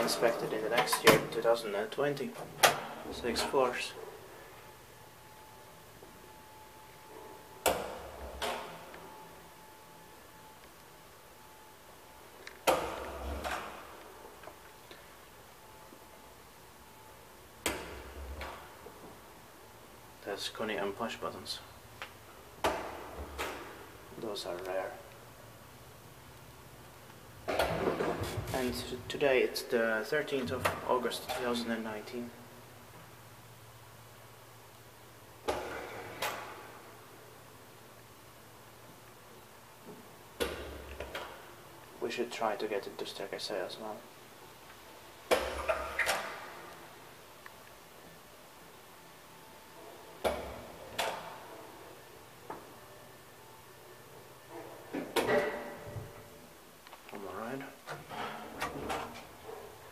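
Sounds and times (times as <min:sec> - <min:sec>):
faint low hum: 0:00.0 - 0:59.9.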